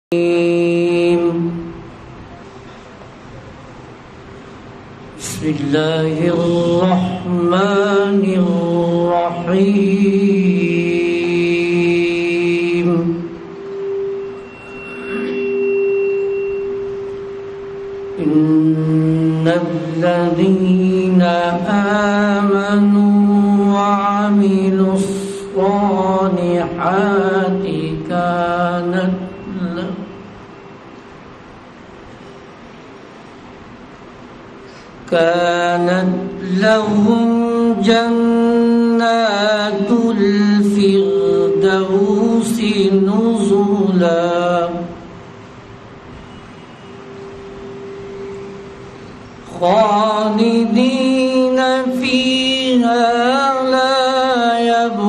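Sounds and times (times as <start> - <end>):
man chanting melodically: 0.0 - 1.9, 5.2 - 13.6, 18.0 - 30.3, 35.0 - 45.2, 49.4 - 55.0
loudspeaker feedback ringing tone: 0.1 - 55.0
high-pitched feedback ring: 11.3 - 21.0, 26.8 - 31.0, 36.3 - 44.7, 46.1 - 54.8.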